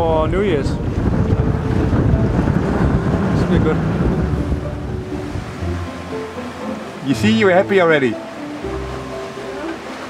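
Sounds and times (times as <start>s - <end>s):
sea noise: 0.0s - 10.0s
soft background music: 0.0s - 10.0s
wind: 0.0s - 10.0s.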